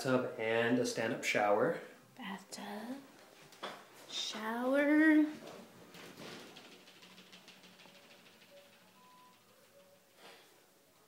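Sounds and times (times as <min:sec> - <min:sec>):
faint brief steady tones: 0:07.8 - 0:10.2.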